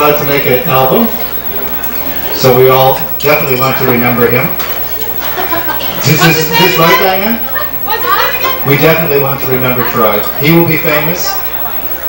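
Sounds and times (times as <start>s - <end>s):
man talking: 0.0s - 4.6s, 6.0s - 7.5s, 8.6s - 11.3s.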